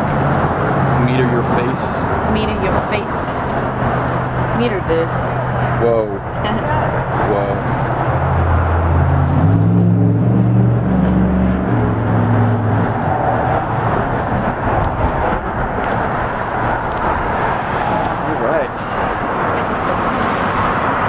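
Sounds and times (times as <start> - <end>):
heavy vehicle engine droning: 0.0 - 21.0
road traffic noise: 0.0 - 21.0.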